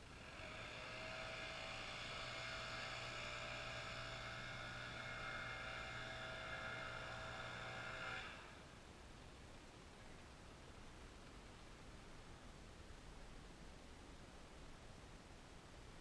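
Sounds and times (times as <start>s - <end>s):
mechanical hum and whir: 0.0s - 16.0s.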